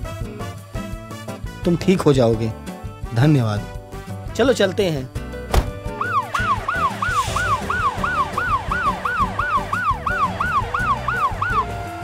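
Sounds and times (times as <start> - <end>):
ambulance siren wailing: 5.9 - 12.0.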